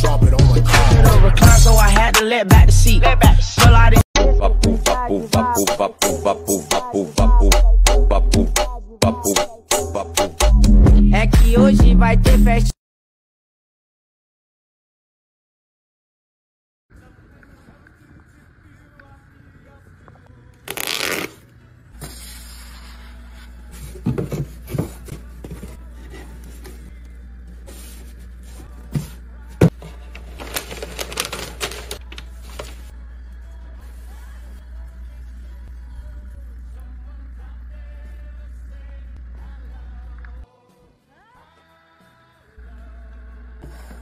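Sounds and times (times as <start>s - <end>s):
packaging rustling: 29.8s - 32.9s
cardboard box being folded: 29.9s - 32.8s.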